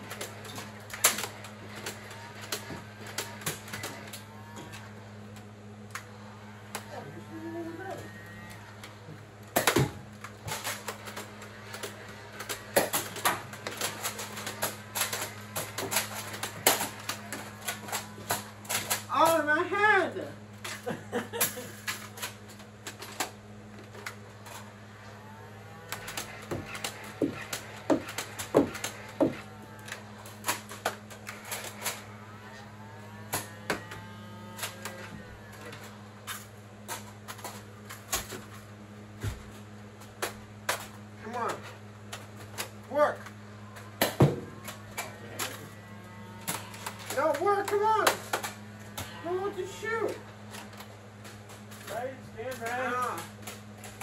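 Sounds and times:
toy blasters clicking and firing: 0.0 - 4.8, 9.6 - 19.5, 25.7 - 32.4, 33.1 - 38.4, 40.2 - 54.0
foam darts hitting objects: 44.0 - 45.6.

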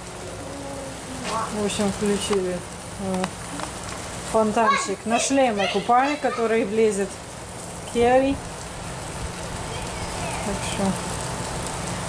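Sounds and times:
lawn sprinkler spraying water: 0.0 - 12.0
faint children's voices: 0.1 - 1.5, 9.6 - 11.0.

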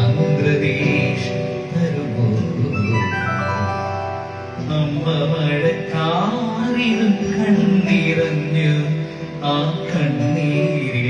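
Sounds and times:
electronic keyboard: 0.0 - 11.0
man singing into microphone: 0.0 - 11.0.

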